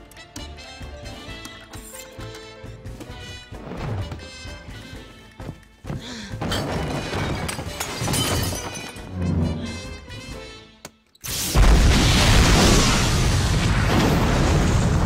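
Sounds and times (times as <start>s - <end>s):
film soundtrack music: 0.0s - 11.8s
crashing and shattering: 6.4s - 9.1s.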